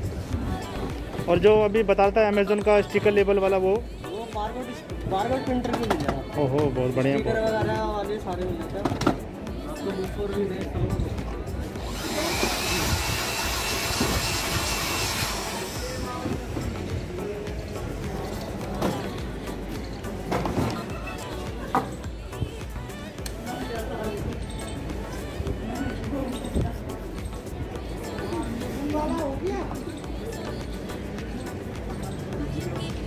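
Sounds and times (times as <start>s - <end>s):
electric air blower whining: 11.8s - 16.5s.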